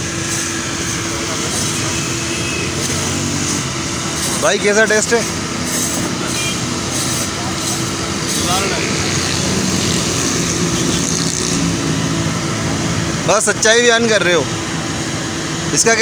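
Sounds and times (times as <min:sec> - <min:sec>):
street traffic: 0:00.0 - 0:16.0
faint voices: 0:04.2 - 0:11.4.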